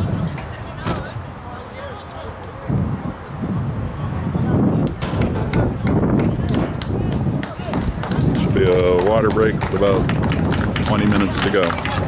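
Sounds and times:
wind rumble on microphone: 0.0s - 1.3s, 2.5s - 12.0s
spectators chattering: 0.0s - 12.0s.

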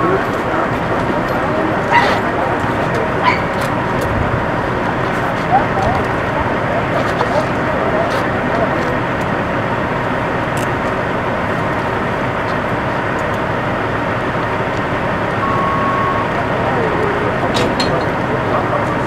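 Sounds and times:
engine rumble and hiss: 0.0s - 19.0s
faint voices: 0.0s - 19.0s
brief high tone: 15.4s - 18.0s.

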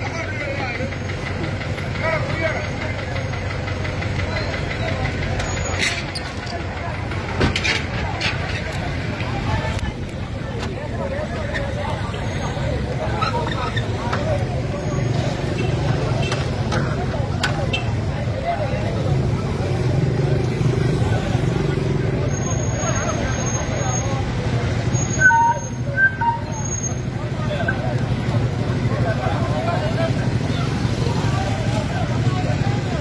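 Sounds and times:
people's voices: 0.0s - 33.0s
vehicle engine rumbling: 0.0s - 33.0s.

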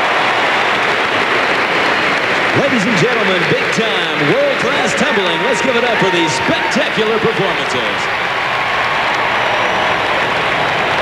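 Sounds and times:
crowd applauding: 0.0s - 11.0s.

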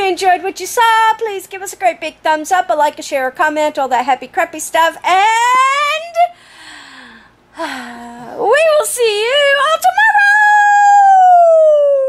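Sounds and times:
woman mock howling: 10.6s - 12.0s.

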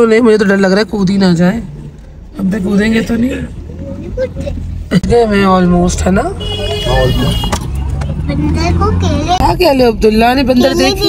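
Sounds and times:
car engine and tyre rumble: 0.0s - 11.0s
voices: 2.4s - 11.0s.

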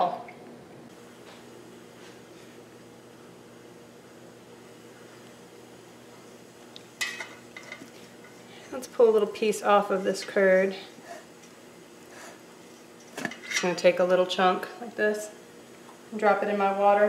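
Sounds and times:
faint room hum: 0.0s - 17.0s.

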